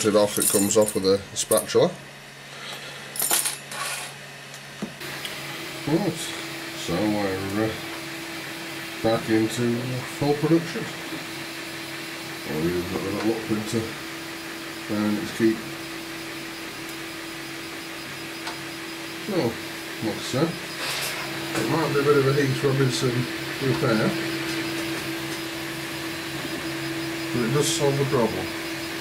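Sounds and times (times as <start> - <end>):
steady low hum: 4.3 - 29.0.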